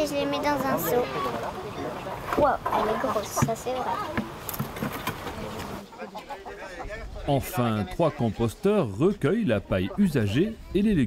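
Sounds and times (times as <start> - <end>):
children talking: 0.0 - 8.6
handling noise: 2.2 - 5.8.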